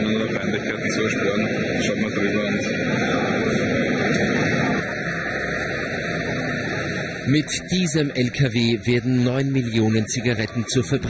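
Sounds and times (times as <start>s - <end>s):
lorry engine running: 0.0s - 11.0s
steady rushing noise: 0.0s - 11.0s
traffic noise: 0.0s - 11.0s.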